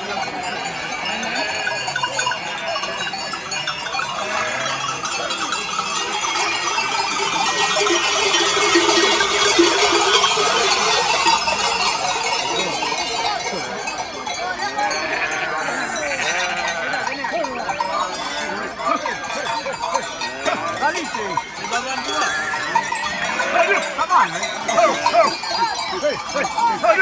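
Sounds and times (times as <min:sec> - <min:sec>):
sheep bells clanking: 0:00.0 - 0:27.0.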